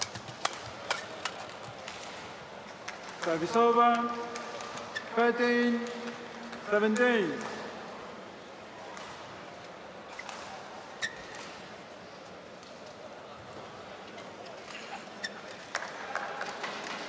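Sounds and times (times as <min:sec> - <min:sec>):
sharp clicks of play on court: 0:00.0 - 0:07.7
crowd murmur: 0:07.3 - 0:17.0.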